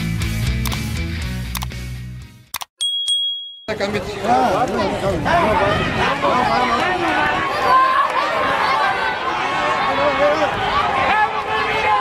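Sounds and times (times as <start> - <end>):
rock music: 0.0 - 2.5
bright bell ding: 2.8 - 3.8.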